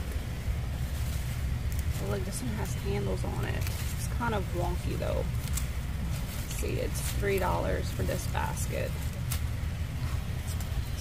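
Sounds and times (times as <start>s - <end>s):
low rumble on microphone: 0.0s - 11.0s
faint rustle: 0.7s - 7.8s.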